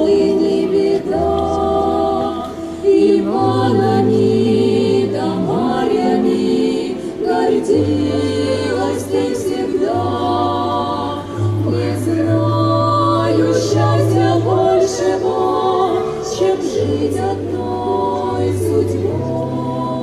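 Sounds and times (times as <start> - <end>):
women singing in harmony: 0.0 - 20.0.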